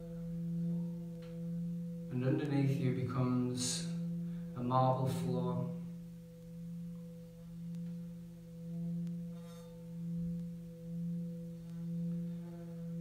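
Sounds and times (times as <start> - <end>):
singing bowl humming: 0.0 - 13.0.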